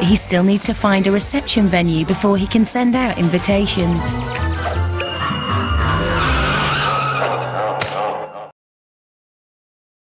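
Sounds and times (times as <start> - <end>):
wavering squeal-like tone: 4.1 - 8.5.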